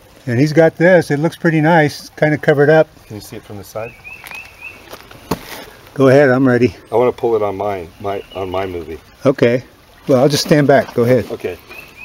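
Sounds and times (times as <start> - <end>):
small bird chirping: 3.0 - 5.4, 6.9 - 9.3, 11.6 - 12.0.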